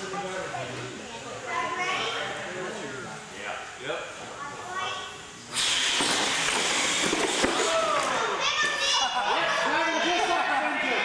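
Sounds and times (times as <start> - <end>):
excited voices calling out: 7.5 - 11.0.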